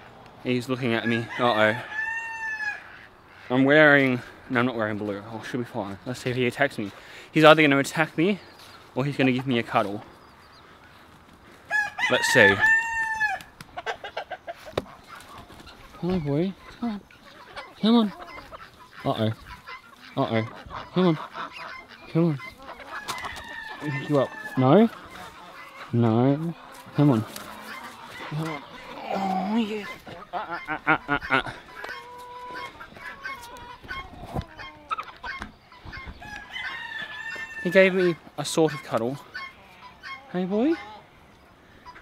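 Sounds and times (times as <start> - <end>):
chickens clucking: 0.0 - 42.0
poultry calling: 0.0 - 42.0
rustling: 22.5 - 30.3.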